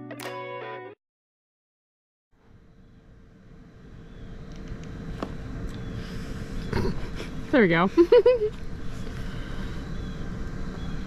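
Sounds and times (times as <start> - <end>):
faint steady hum: 2.4 - 11.0.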